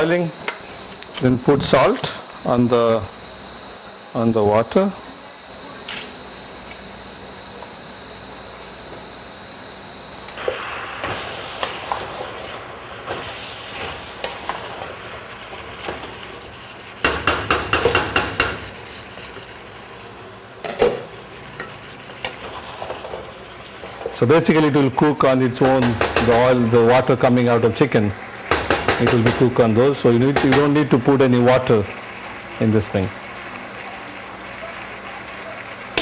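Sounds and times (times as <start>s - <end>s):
curry sizzling in a pot: 0.0s - 36.0s
faint hum with high whine: 0.0s - 36.0s.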